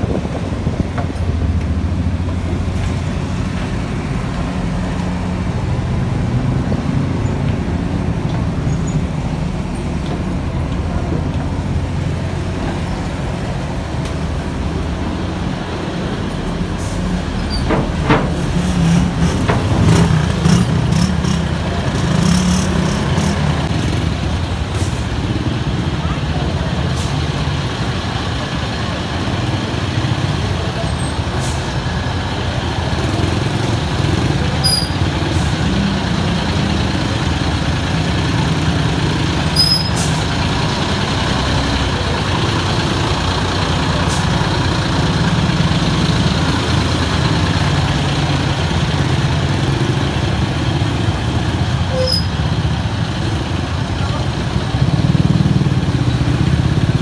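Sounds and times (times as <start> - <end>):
bus engine idling: 0.0 - 57.0.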